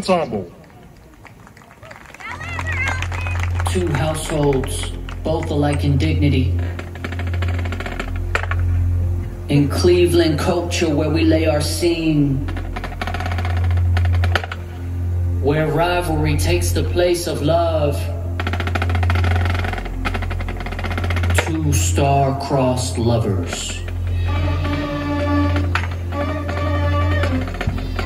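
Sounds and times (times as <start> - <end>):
marching band music: 0.0 - 28.0
low drone: 2.3 - 28.0
sustained low bass note: 3.2 - 28.0.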